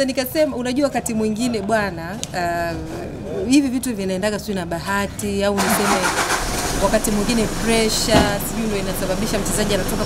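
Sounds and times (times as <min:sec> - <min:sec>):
woman talking: 0:00.0 - 0:06.2, 0:06.8 - 0:10.0.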